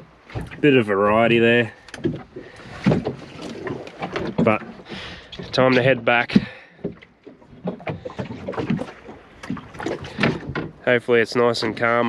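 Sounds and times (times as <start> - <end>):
light knocks and clatter on boat: 0.0 - 12.0.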